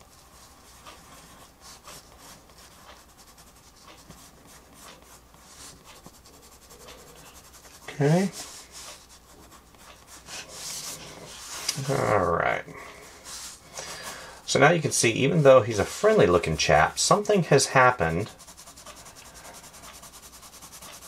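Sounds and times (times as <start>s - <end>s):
pencil scratching on paper: 0.0s - 12.3s, 13.0s - 21.0s.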